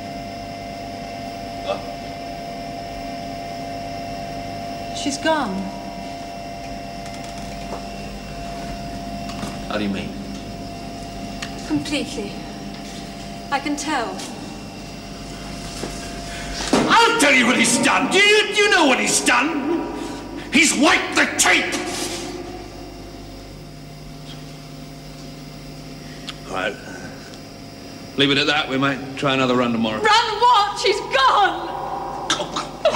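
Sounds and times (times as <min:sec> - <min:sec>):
electronic equipment humming: 0:00.0 - 0:32.9
echo of a shout: 0:31.0 - 0:32.9.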